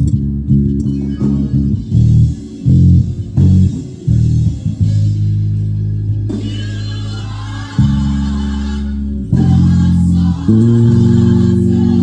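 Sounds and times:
electric bass low notes: 0.0s - 12.0s
gospel music: 0.0s - 12.0s.

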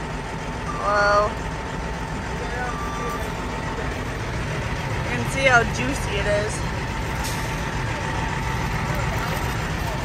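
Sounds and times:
heavy machinery engine rumbling: 0.0s - 10.0s.

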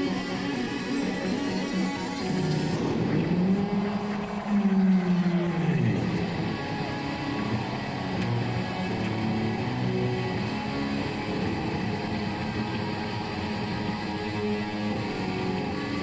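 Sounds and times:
distorted electric guitar solo: 0.0s - 16.0s.

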